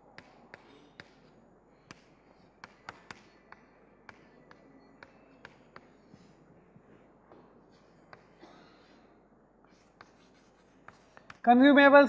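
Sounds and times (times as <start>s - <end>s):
chalk ticks on board: 0.2s - 6.0s, 9.7s - 11.5s
chalk scratching on blackboard: 9.6s - 11.5s.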